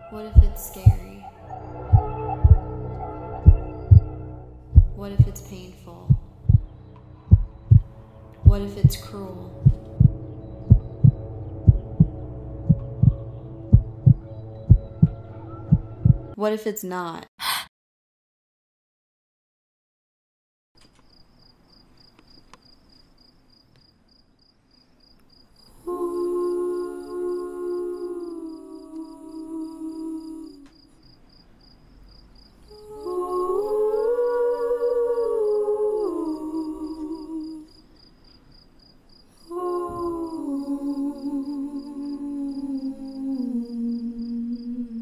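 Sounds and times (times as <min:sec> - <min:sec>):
insect chirping: 0:00.0 - 0:05.5, 0:06.1 - 0:12.2, 0:20.9 - 0:45.0
low droning music: 0:00.0 - 0:16.4
heartbeat double thumps: 0:00.4 - 0:01.2, 0:01.9 - 0:02.7, 0:03.4 - 0:04.1, 0:04.7 - 0:05.5, 0:06.1 - 0:16.3.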